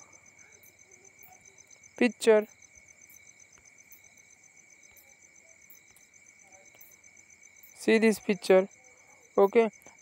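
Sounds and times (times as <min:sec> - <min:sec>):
faint high-pitched chirping pulse: 0:00.0 - 0:10.0.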